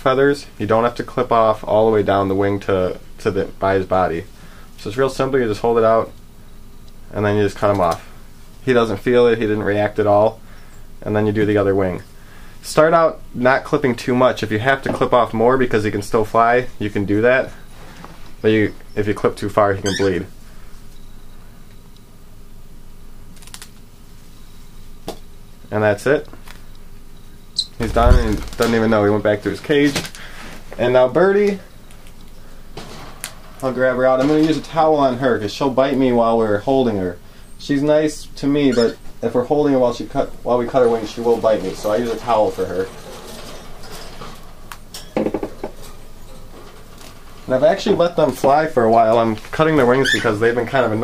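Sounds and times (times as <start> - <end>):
low room hum: 0.0 - 51.0
rustling handling noise: 27.8 - 35.3, 39.8 - 50.8.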